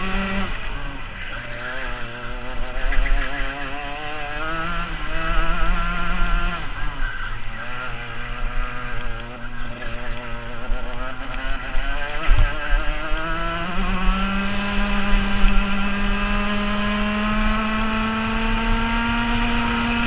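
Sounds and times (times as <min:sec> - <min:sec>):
kart engine revving: 0:00.0 - 0:20.0.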